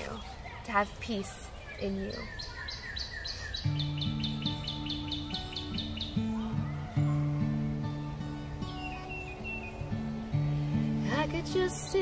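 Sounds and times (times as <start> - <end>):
songbird chirping: 0.0 - 12.0
acoustic guitar music: 3.4 - 12.0.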